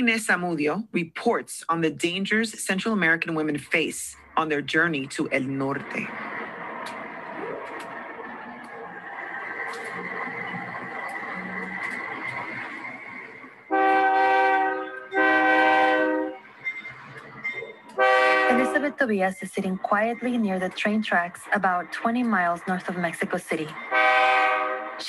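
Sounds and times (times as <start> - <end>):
train noise: 0.0 - 25.0
train horn blasts: 13.7 - 16.4, 18.0 - 18.9, 23.9 - 25.0.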